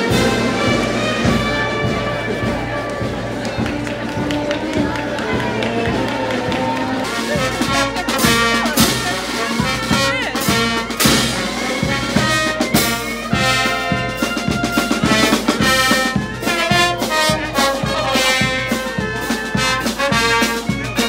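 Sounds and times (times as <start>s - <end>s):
brass band playing a march: 0.0s - 21.0s
steady drum beat: 0.0s - 21.0s.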